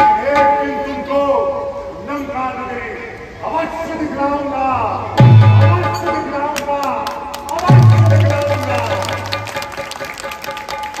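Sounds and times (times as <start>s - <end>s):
live stage music held tones: 5.0s - 6.7s, 7.5s - 11.0s
percussion hits: 5.1s - 11.0s.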